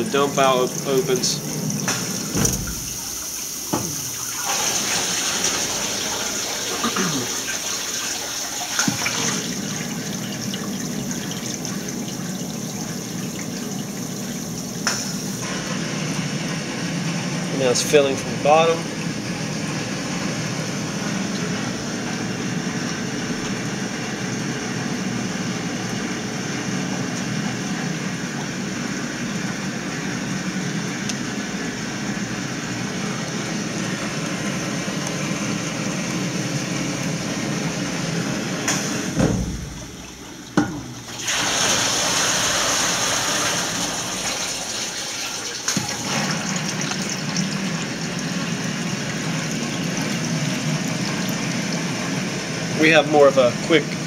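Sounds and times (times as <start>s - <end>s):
water rushing into a tank: 0.0s - 54.0s.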